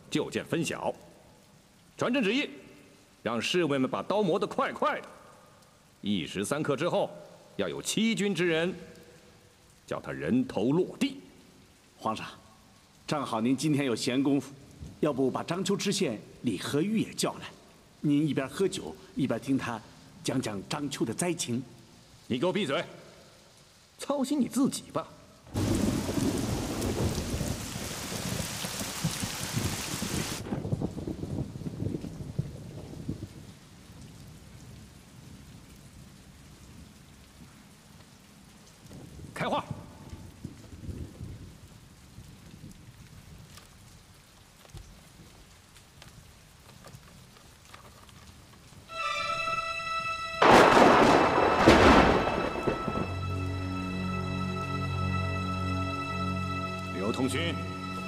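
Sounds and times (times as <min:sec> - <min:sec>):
rain: 0:00.0 - 0:58.0
sharp thunder crack: 0:25.5 - 0:29.7, 0:50.4 - 0:53.6
thunderclap rumbling: 0:25.5 - 0:33.5, 0:50.4 - 0:53.7
music: 0:48.9 - 0:58.0.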